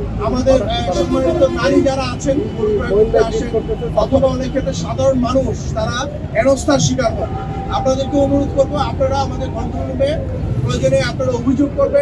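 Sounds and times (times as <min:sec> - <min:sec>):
man speaking into microphones: 0:00.0 - 0:12.0.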